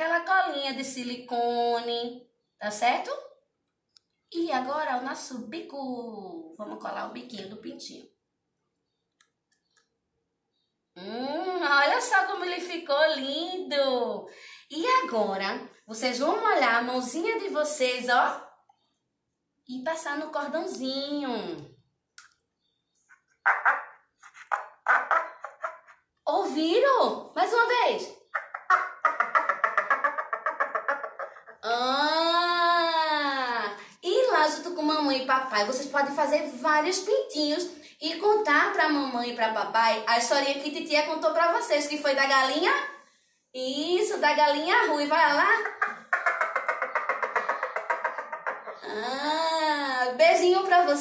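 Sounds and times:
noisemaker rasping clucks: 28.2s - 31.6s, 45.4s - 48.8s.

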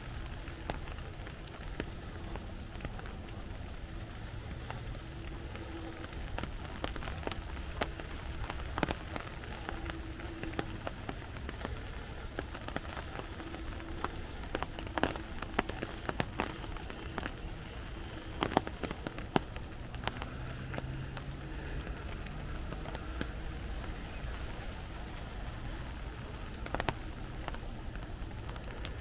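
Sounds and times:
raindrops tapping on umbrella: 0.0s - 29.0s
steady rain: 0.0s - 29.0s.

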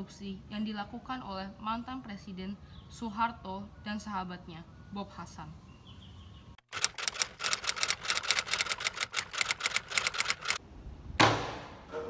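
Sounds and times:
typewriter key clicks: 6.7s - 10.6s.

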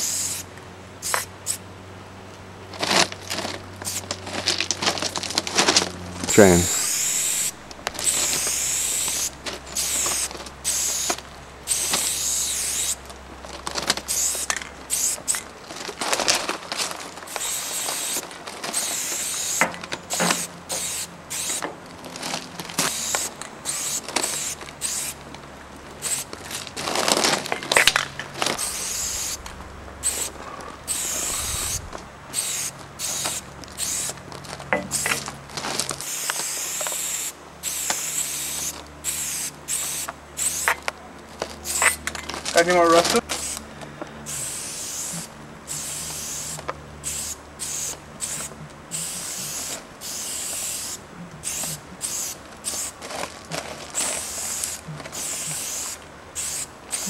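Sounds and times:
spray paint can hissing: 0.0s - 1.6s, 3.8s - 4.1s, 6.8s - 13.0s, 14.1s - 15.4s, 17.3s - 21.6s, 22.8s - 25.2s, 26.0s - 26.3s, 28.6s - 29.4s, 30.0s - 34.2s, 34.8s - 35.2s, 36.0s - 40.8s, 41.6s - 42.1s, 43.3s - 43.6s, 44.3s - 53.0s, 54.0s - 57.0s.

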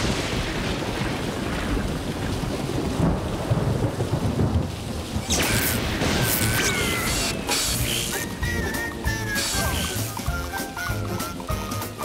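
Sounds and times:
low thunder rolls: 0.0s - 10.0s
heavy rain pouring: 0.0s - 12.0s.

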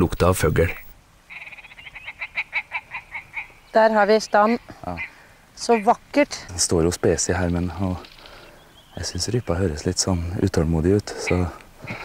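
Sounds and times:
bird croaking rattle call: 0.7s - 6.0s, 7.2s - 9.5s.

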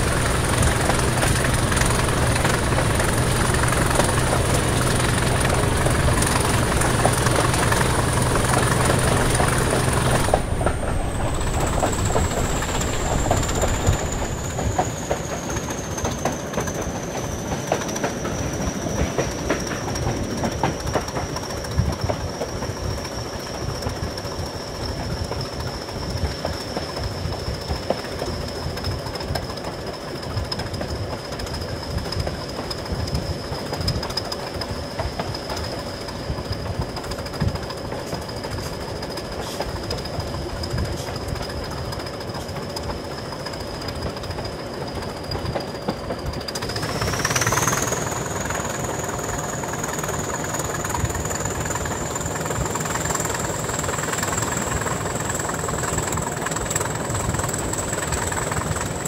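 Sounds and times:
diesel locomotive engine: 0.0s - 59.0s
wheels clicking over rail joints: 0.0s - 59.0s.

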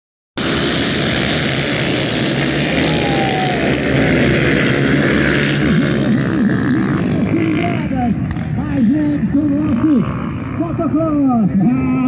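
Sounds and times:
dirt bikes revving hard: 0.4s - 12.0s.

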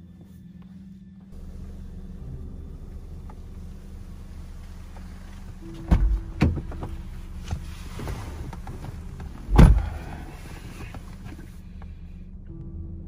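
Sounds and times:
low hum in car cabin: 0.0s - 13.0s
car door thumps: 5.6s - 11.1s.

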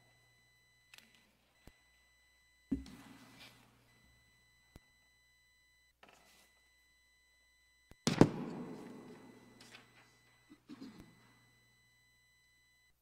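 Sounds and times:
loud ringing thump: 8.0s - 9.6s.

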